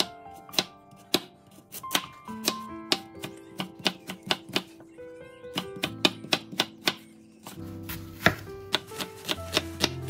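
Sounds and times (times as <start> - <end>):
knife slicing carrot on board: 8.2 - 10.0.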